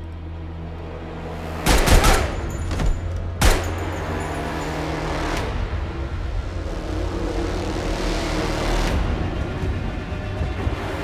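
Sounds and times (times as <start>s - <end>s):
low rumbling drone: 2.4s - 11.0s.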